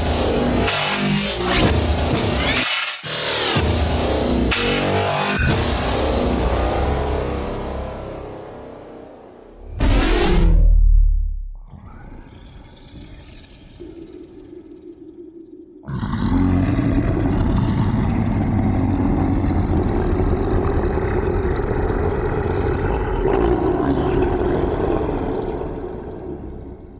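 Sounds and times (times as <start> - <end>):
low drone: 3.5 - 26.9
dense rumbling drone: 5.4 - 26.9.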